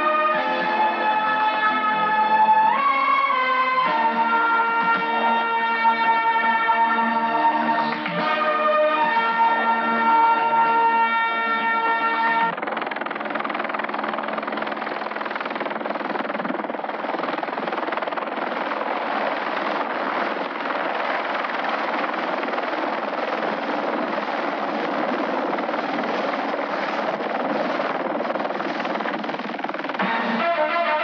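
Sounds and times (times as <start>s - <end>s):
helicopter hovering: 0.0s - 31.0s.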